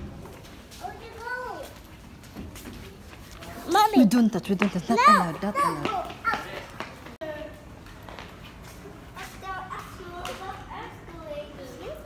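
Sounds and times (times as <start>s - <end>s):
children chattering: 3.4s - 6.8s.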